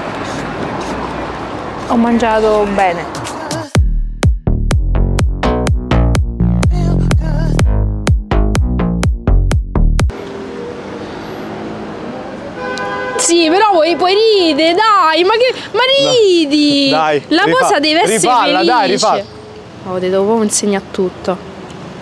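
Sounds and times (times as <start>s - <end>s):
traffic hum: 0.0s - 3.7s, 9.9s - 22.0s.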